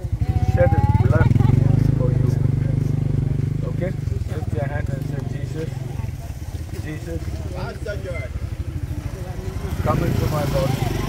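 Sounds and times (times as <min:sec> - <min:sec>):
motorcycle engine running: 0:00.0 - 0:11.0
quiet voices: 0:00.0 - 0:11.0.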